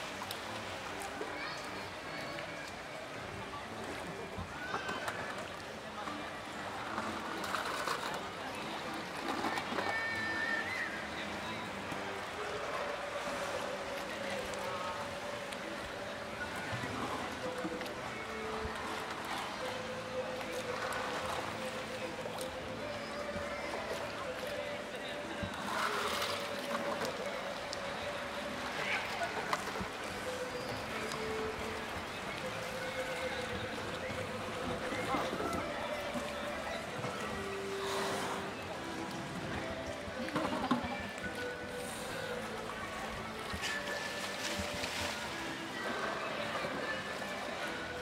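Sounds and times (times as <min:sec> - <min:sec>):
faint background music: 0:00.0 - 0:48.0
murmur of spectators' voices: 0:00.0 - 0:48.0
water splashing and sloshing: 0:00.0 - 0:48.0.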